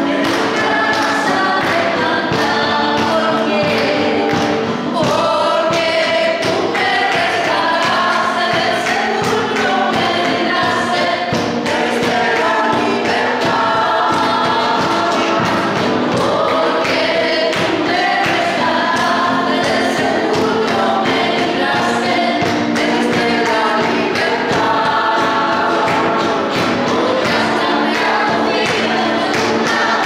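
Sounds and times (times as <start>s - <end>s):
group singing worship song: 0.0s - 30.0s
instrumental accompaniment: 0.0s - 30.0s.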